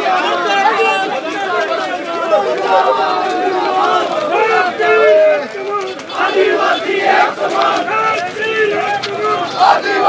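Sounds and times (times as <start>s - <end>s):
crowd of men talking and shouting: 0.0s - 10.0s.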